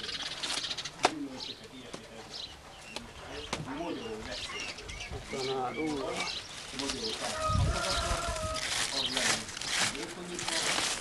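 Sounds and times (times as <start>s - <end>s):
doves cooing: 0.0s - 9.5s
small birds chirping: 0.0s - 11.0s.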